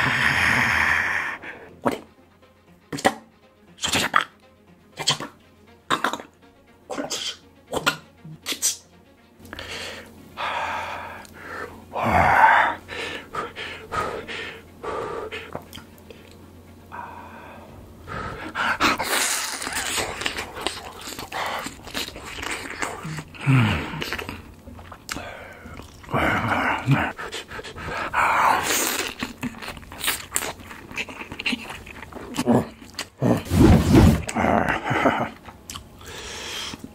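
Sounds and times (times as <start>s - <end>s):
breathy huffing: 9.5s - 24.5s, 25.1s - 29.7s, 36.0s - 36.9s
wet chewing: 18.4s - 33.2s, 35.4s - 36.9s.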